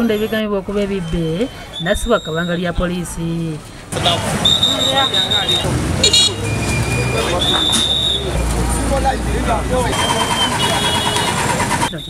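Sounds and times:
crowd talking and shouting: 0.0s - 12.0s
vehicle engines running: 2.8s - 12.0s.

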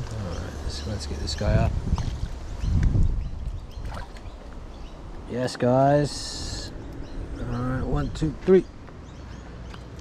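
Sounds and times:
fish splashing in water: 3.7s - 4.4s.

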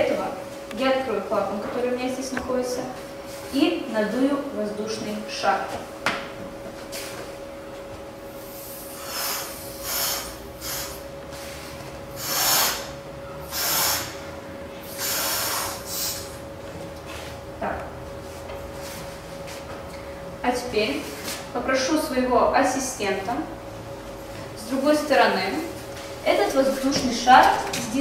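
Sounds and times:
faint steady hum: 0.0s - 28.0s
breathy puffs blowing up balloon: 8.5s - 14.2s, 14.8s - 16.4s.

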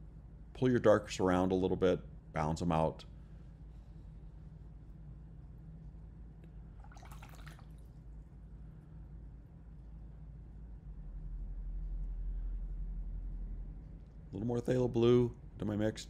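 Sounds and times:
low steady hum: 0.0s - 16.0s
brief swish of water: 6.8s - 7.9s.

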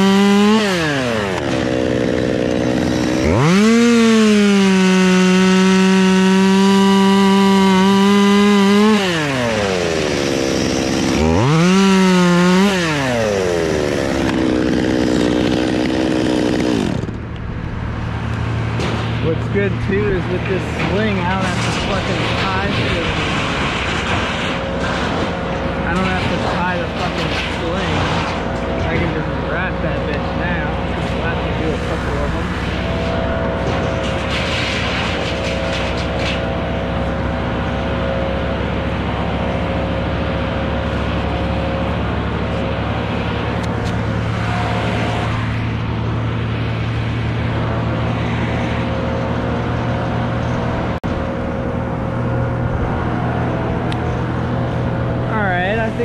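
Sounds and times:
engine running steadily: 0.0s - 56.0s.

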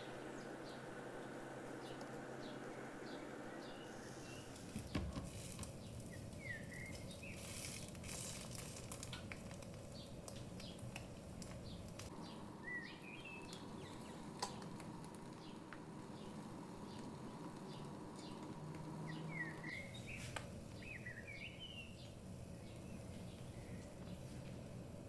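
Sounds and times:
frying pan sizzling: 0.0s - 12.1s, 13.2s - 21.4s
small birds chirping: 0.0s - 25.0s.

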